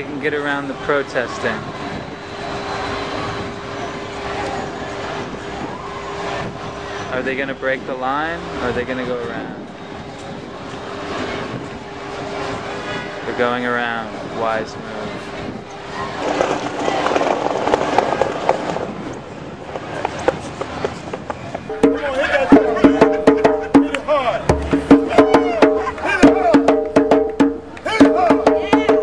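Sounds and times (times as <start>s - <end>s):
faint crowd voices: 0.0s - 29.0s
traffic hum: 0.0s - 29.0s.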